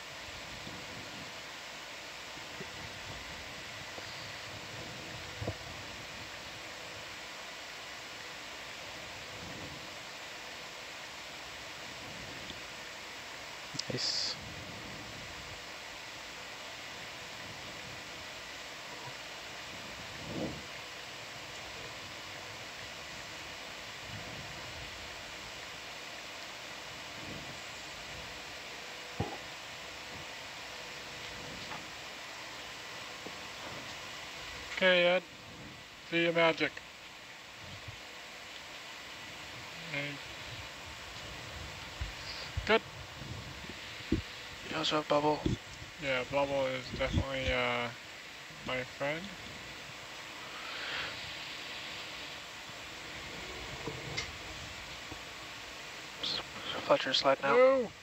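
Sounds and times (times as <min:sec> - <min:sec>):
microphone line hiss: 0:00.0 - 0:58.0.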